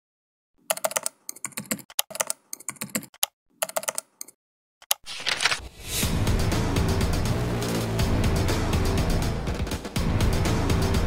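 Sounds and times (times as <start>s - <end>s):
rapid keyboard key clicks: 0.7s - 5.5s.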